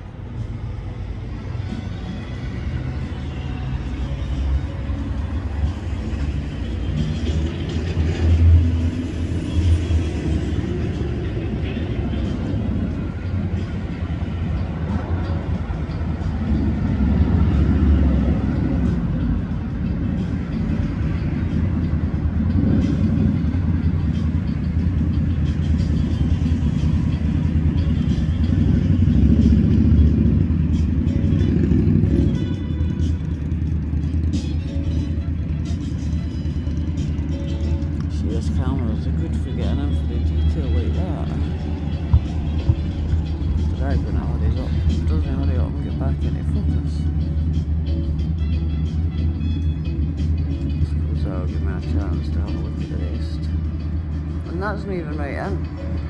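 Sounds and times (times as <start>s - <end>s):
passing road traffic rumble: 0.0s - 56.0s.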